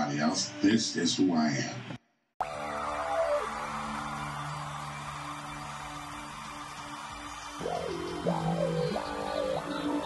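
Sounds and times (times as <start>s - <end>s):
electronic instrumental music: 2.4s - 10.0s.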